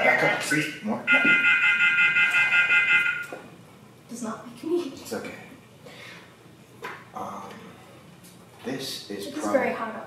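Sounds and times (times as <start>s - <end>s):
electronic alarm pulsing tone: 0.6s - 3.4s.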